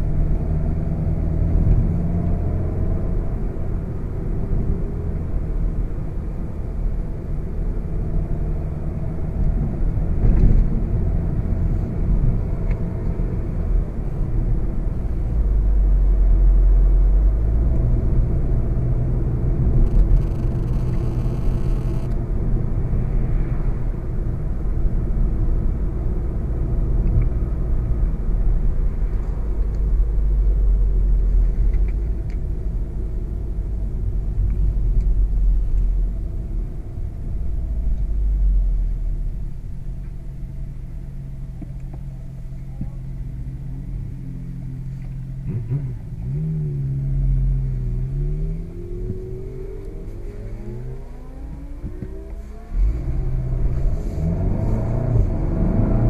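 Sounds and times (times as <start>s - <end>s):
car engine pulling steadily: 0.0s - 56.0s
tyre and road rumble: 17.3s - 23.0s.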